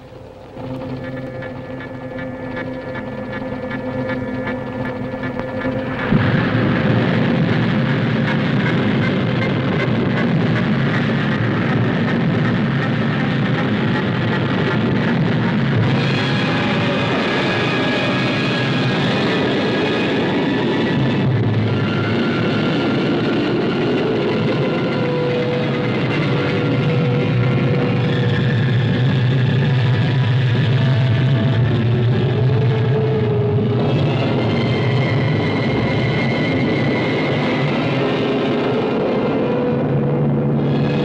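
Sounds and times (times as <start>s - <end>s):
film score long held notes: 0.0s - 41.0s
rocket engine rushing: 0.0s - 41.0s.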